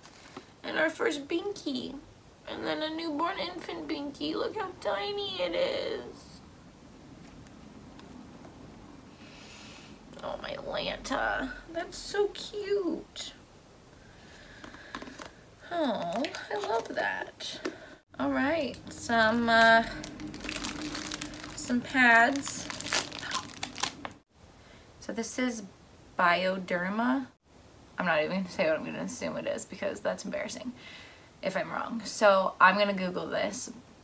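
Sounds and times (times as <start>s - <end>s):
plastic packet crinkling: 14.7s - 17.3s, 18.5s - 24.2s.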